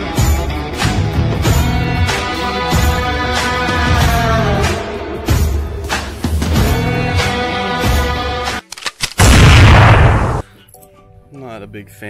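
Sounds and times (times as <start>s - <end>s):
loud blast: 9.2s - 10.4s.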